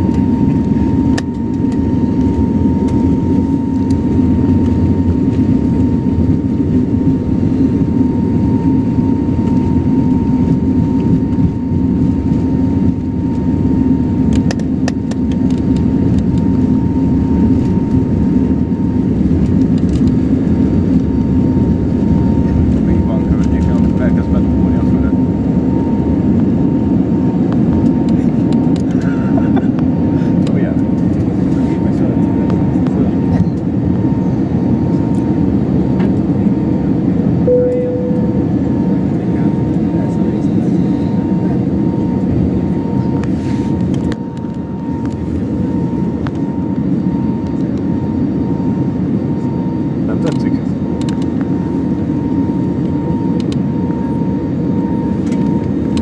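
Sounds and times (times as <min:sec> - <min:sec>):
jet engine rumble and whine: 0:00.0 - 0:56.0.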